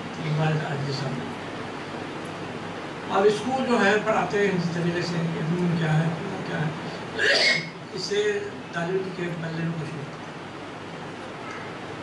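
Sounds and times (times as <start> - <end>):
man talking: 0.2 - 1.3, 3.1 - 6.8, 7.9 - 10.2
man coughing: 7.2 - 7.7.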